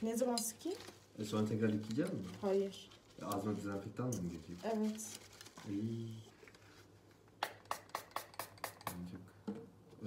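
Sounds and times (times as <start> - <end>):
paper towel rustling: 0.7 - 7.2.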